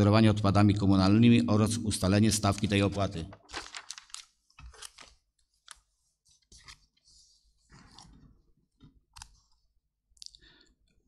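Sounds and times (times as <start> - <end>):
papers rustling and clicking: 2.4 - 9.6.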